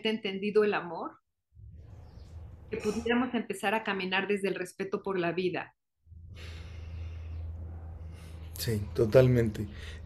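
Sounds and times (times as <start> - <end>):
low hum: 6.0 - 10.0.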